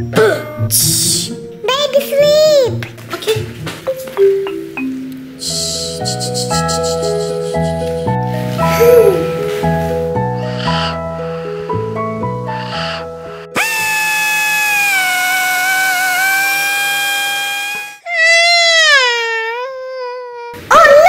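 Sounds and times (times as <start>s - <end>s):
light musical tune: 3.8s - 13.2s
cordless drill whining: 13.6s - 18.0s
baby wailing: 13.7s - 20.6s.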